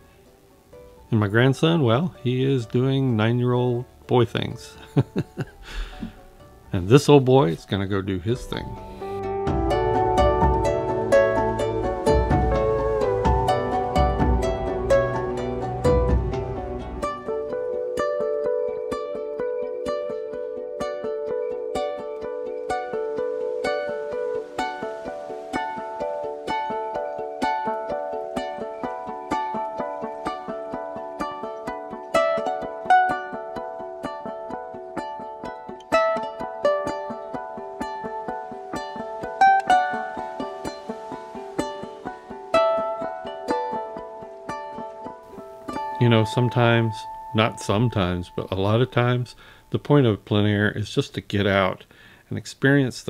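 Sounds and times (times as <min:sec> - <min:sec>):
plucked string melody: 0:00.0 - 0:51.8.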